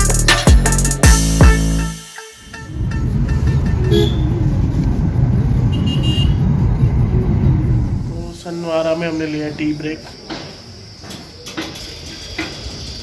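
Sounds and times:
vehicle horn toots: 0:02.2 - 0:04.4, 0:05.6 - 0:06.5
street traffic rumble: 0:02.4 - 0:13.0.

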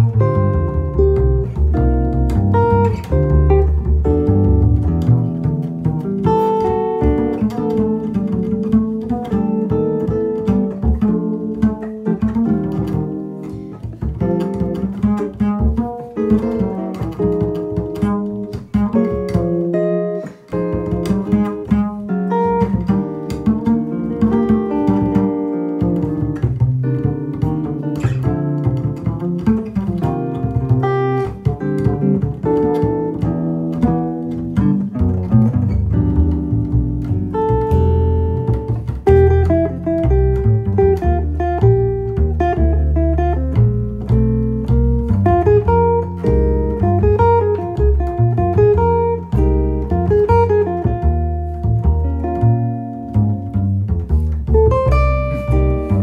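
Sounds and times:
jazz electric guitar: 0:00.0 - 0:56.0
pizzicato upright bass: 0:00.0 - 0:56.0.

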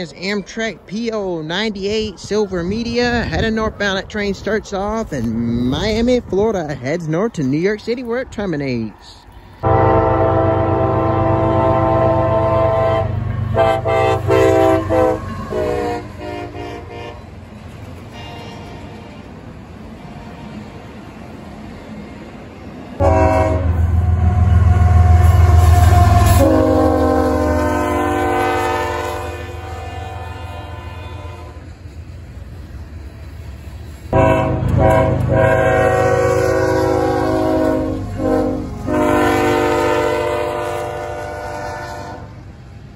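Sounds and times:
locomotive engine rumble: 0:00.0 - 0:42.9
passing train rumble: 0:00.0 - 0:42.9
locomotive air horn: 0:09.6 - 0:17.3, 0:18.1 - 0:19.3, 0:23.0 - 0:31.7, 0:34.1 - 0:42.4.

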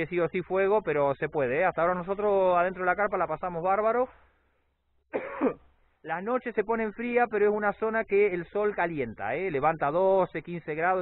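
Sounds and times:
man coughing: 0:05.1 - 0:05.7.

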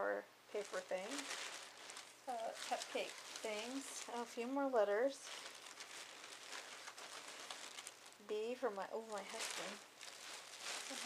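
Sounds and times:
plastic packaging rustling: 0:00.5 - 0:11.0.

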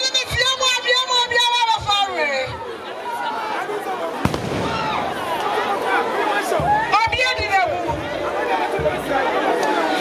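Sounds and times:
murmur of crowd voices: 0:00.0 - 0:10.0
sharp crack: 0:04.3 - 0:05.5.

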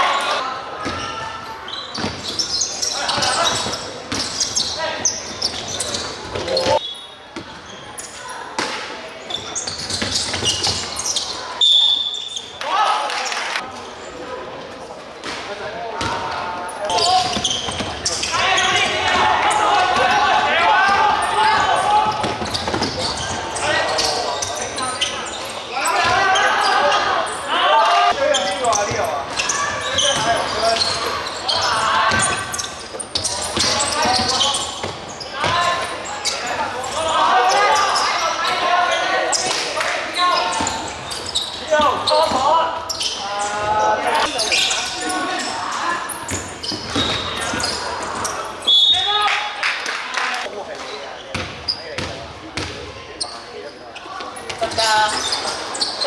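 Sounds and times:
voices calling out: 0:16.0 - 0:50.5.

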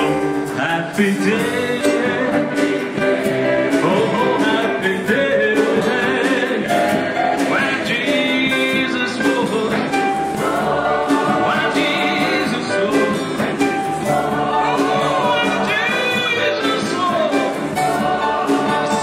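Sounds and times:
man singing: 0:00.0 - 0:02.9, 0:03.7 - 0:06.8, 0:07.5 - 0:10.2, 0:11.4 - 0:13.4, 0:14.6 - 0:17.6
choir singing gospel: 0:00.0 - 0:19.0.

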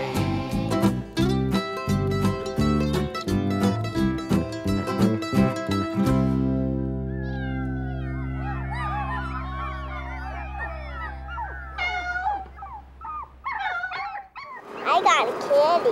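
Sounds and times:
young pets crying: 0:06.9 - 0:14.8.

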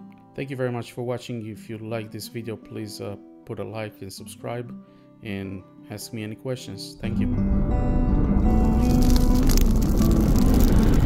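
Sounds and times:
rushing whoosh with crackles: 0:08.1 - 0:11.0.

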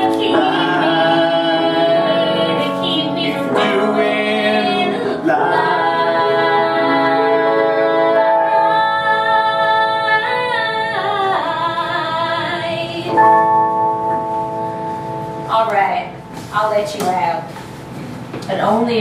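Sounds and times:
woman singing: 0:00.0 - 0:04.0, 0:04.6 - 0:13.2.

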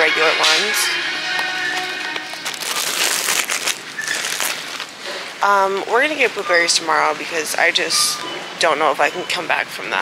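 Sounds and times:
background music with held tones: 0:00.0 - 0:03.2
close rustling and crinkling: 0:01.6 - 0:07.6.

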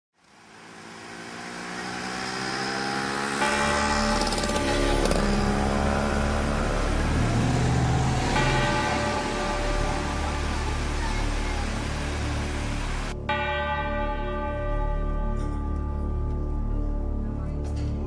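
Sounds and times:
church bells ringing: 0:01.2 - 0:18.0.

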